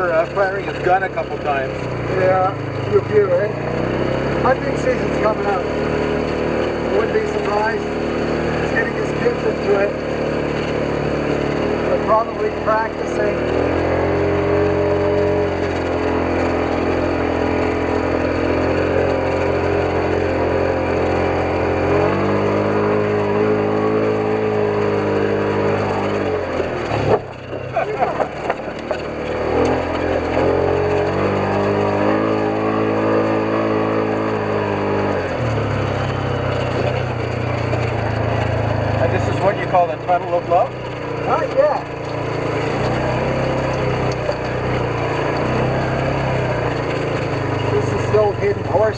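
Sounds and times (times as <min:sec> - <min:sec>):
vehicle engine revving: 0:00.0 - 0:48.9.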